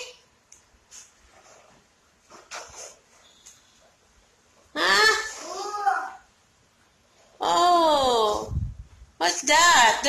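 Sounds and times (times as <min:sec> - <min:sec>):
toddler babbling: 0:05.0 - 0:06.3.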